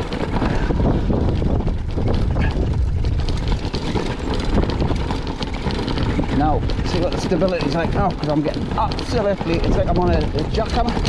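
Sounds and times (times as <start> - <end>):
mountain bike rattling over stones: 0.0 - 11.0.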